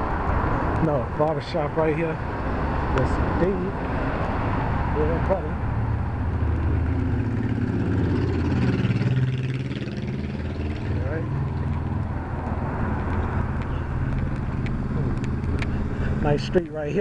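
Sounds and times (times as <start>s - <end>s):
car passing: 0.0s - 17.0s
motorcycle engine passing: 5.8s - 12.4s.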